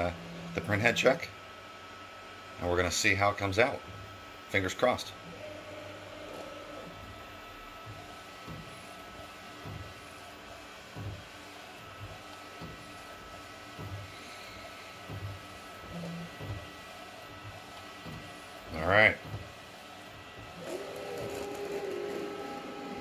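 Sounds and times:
printer mechanical whir: 0.0s - 23.0s.

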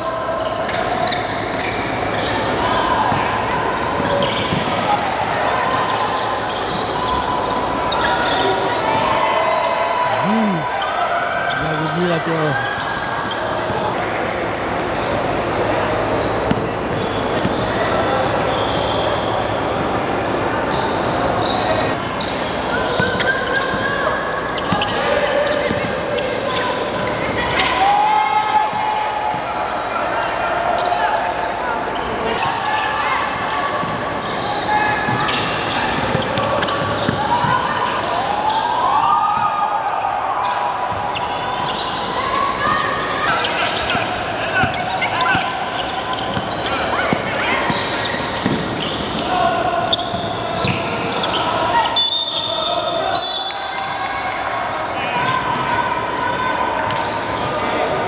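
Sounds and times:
players calling out: 0.4s - 23.9s.

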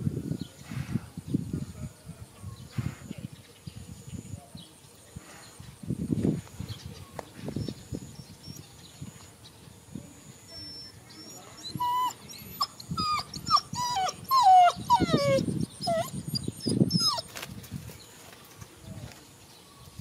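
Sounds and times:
dog whimpering: 10.5s - 17.3s.

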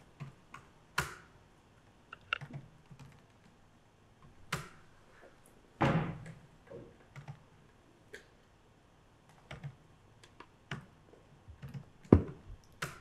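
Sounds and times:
keyboard typing: 2.1s - 3.6s, 7.1s - 7.4s, 9.2s - 13.0s.

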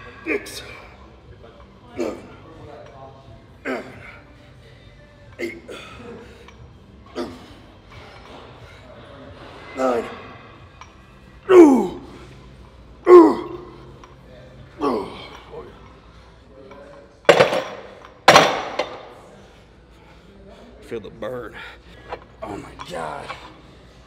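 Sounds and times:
man grunting with effort: 13.1s - 13.6s.

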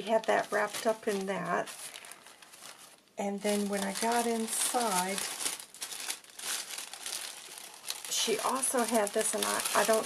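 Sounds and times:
tissue paper crinkling: 0.0s - 10.0s.

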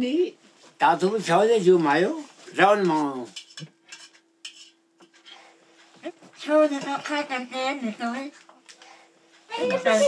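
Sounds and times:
metal spoon scraping a plate: 3.3s - 5.5s.

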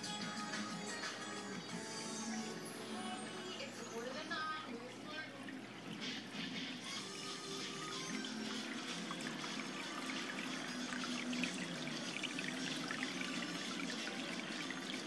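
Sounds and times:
background music: 0.0s - 4.8s, 6.0s - 15.0s
water trickling and splashing: 4.5s - 15.0s.

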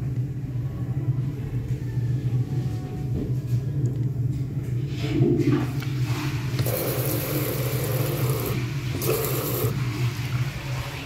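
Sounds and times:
steady low hum: 0.0s - 11.0s
tap water running into basin: 5.6s - 11.0s.

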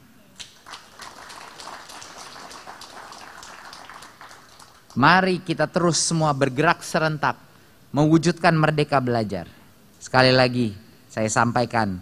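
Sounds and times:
audience applauding: 0.4s - 5.2s.

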